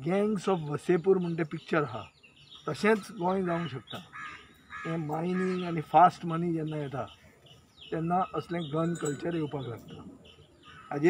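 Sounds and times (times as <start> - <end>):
man speaking: 0.0 - 2.1, 2.7 - 4.0, 4.8 - 7.1, 7.9 - 10.2
crow cawing: 3.5 - 5.9.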